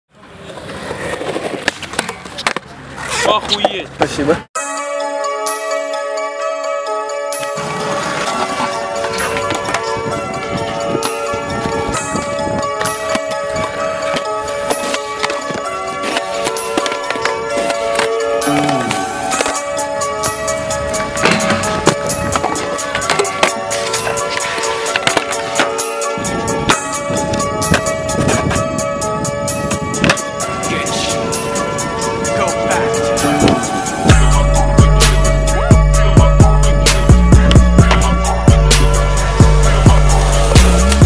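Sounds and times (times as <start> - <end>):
skateboard wheels rolling on concrete: 0.1 - 4.5, 7.3 - 41.0
music with steady beat: 18.5 - 41.0.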